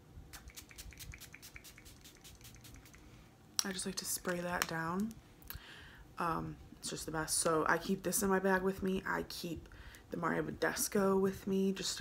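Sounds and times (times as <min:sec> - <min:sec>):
facial mist spray hisses: 0:00.4 - 0:03.0.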